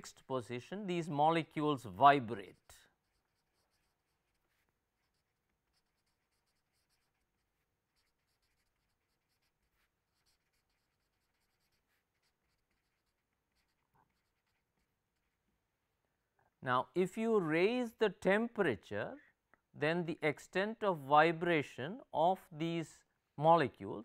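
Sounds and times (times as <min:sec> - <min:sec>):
marker pen scratching on paper: 0:02.2 - 0:15.5.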